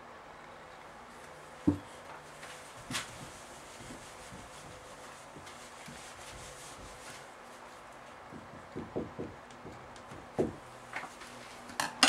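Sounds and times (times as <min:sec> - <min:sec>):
eraser rubbing on whiteboard: 0:02.7 - 0:07.8.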